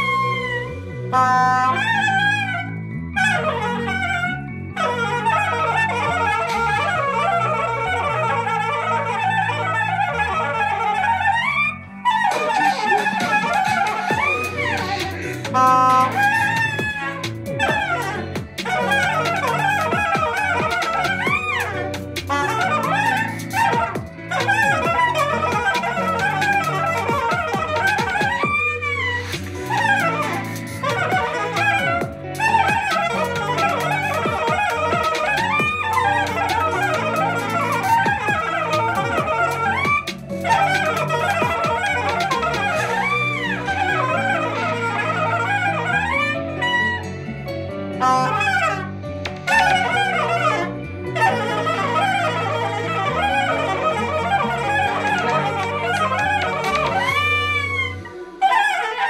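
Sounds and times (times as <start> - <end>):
soprano saxophone solo: 0.0 - 59.0
sustained backing chords: 11.0 - 58.4.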